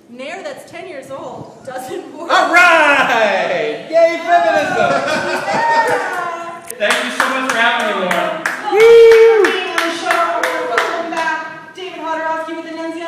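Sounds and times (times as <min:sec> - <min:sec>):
hands clapping in rhythm: 0:06.8 - 0:11.4.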